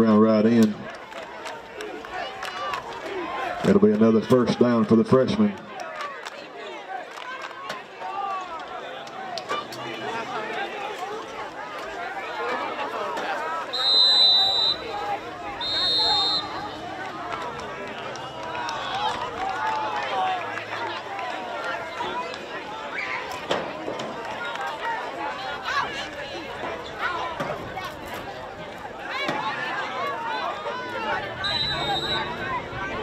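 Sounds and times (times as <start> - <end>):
chatter and calls of people: 0.0 - 33.0
referee's whistle blasts: 13.7 - 16.8, 31.4 - 32.4.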